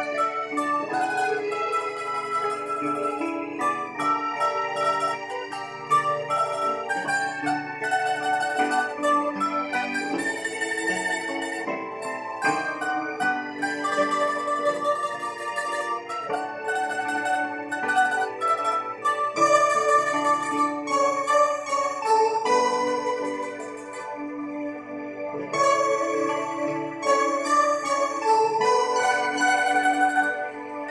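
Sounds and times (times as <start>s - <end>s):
bandurria melody: 0.0s - 30.9s.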